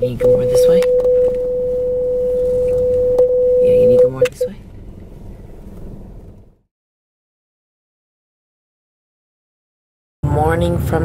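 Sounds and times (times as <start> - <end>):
car engine and road noise: 0.0 - 6.7, 10.2 - 11.0.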